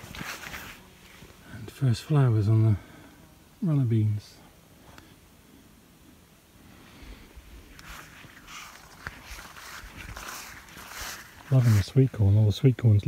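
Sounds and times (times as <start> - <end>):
footsteps: 0.0 - 1.4, 7.4 - 12.3
leaves swishing and rustling: 0.0 - 1.4, 7.4 - 12.4.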